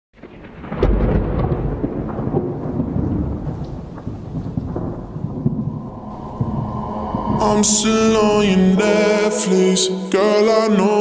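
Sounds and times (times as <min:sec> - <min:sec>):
steady rain: 0:00.2 - 0:08.6
thunder rumbling: 0:00.2 - 0:10.4.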